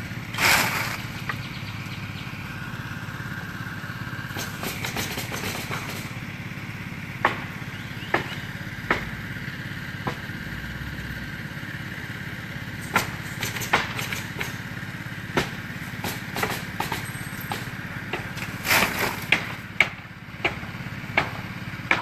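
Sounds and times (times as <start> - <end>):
small engine running: 0.0 - 22.0
nailing shingles cracks: 15.4 - 20.6.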